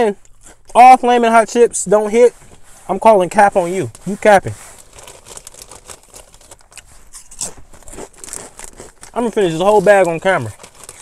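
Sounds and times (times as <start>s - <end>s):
foil bag crinkling: 3.1s - 11.0s
chips being chewed: 4.0s - 11.0s.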